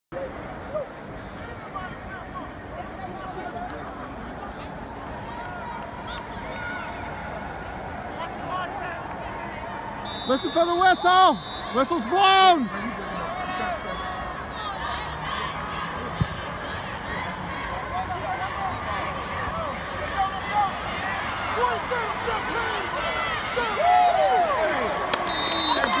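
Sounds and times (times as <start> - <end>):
stadium background noise: 0.1 - 26.0
referee's whistle blast: 10.0 - 12.0, 25.2 - 26.0
people shouting: 18.2 - 24.8.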